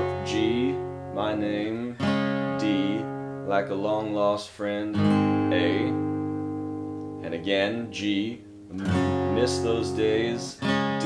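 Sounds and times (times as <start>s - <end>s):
acoustic guitar chord ringing: 0.0s - 4.3s, 4.9s - 11.0s.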